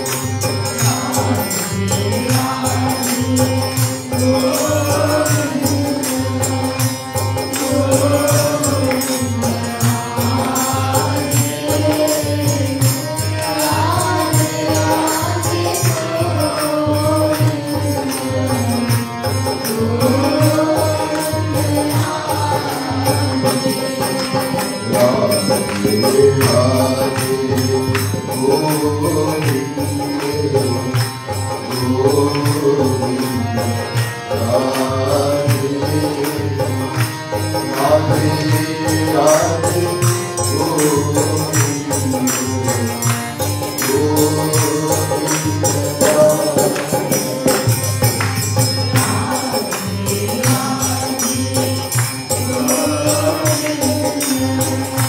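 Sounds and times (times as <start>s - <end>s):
man singing a chant: 0.0s - 48.2s, 48.8s - 55.0s
harmonium playing chords: 0.0s - 55.0s
percussion beat: 0.0s - 55.0s.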